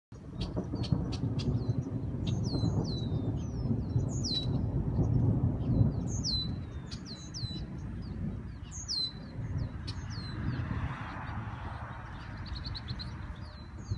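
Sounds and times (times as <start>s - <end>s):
thunder rumbling: 0.1s - 13.9s
bird chirping: 0.2s - 13.9s.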